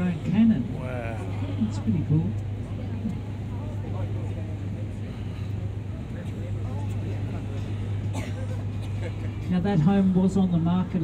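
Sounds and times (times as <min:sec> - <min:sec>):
ferry engine droning: 0:00.0 - 0:11.0.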